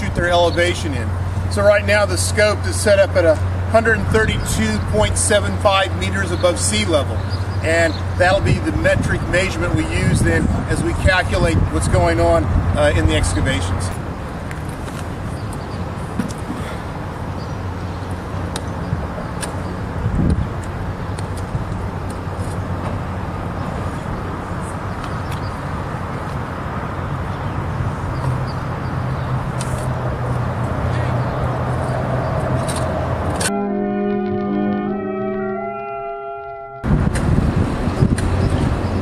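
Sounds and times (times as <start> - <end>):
city traffic rumble: 0.0 - 39.0
held music notes: 33.4 - 37.1.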